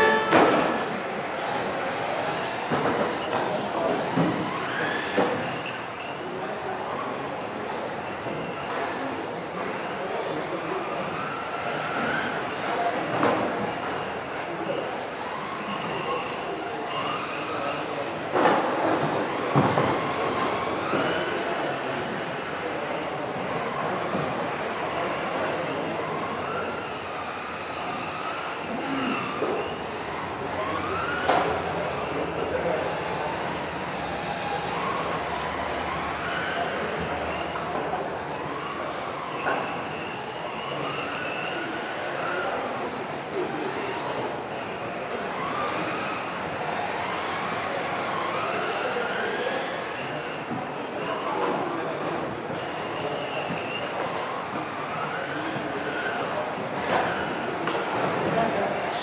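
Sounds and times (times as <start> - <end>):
rc car motors whining: 0.0 - 59.0.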